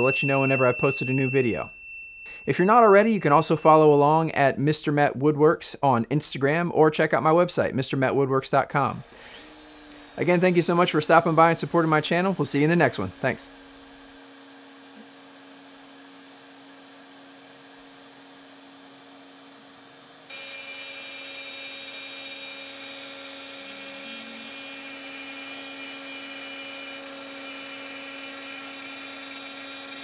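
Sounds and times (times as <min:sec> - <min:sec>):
router spindle humming: 0:09.0 - 0:30.0.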